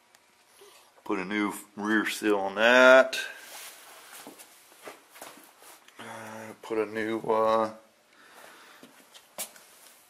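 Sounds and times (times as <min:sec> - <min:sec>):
faint shuffling and handling noise: 0:02.8 - 0:07.6, 0:08.2 - 0:10.0.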